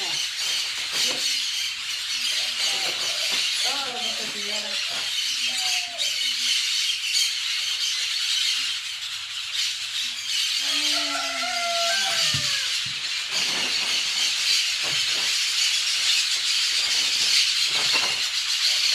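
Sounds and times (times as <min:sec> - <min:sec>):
parakeets screeching: 0:00.0 - 0:18.9.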